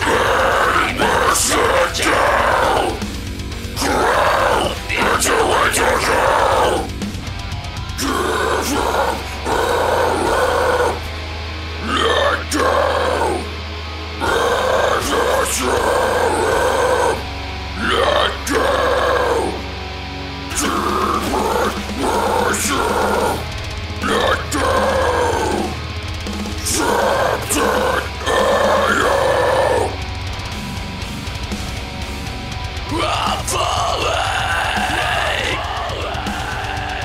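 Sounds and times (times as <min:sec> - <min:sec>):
deathcore instrumental: 0:00.0 - 0:37.0
harsh guttural scream: 0:00.0 - 0:37.0
heavy metal backing track: 0:00.0 - 0:37.0.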